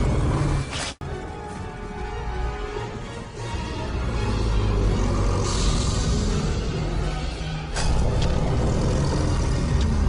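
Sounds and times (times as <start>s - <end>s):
dramatic score music: 0.0s - 10.0s.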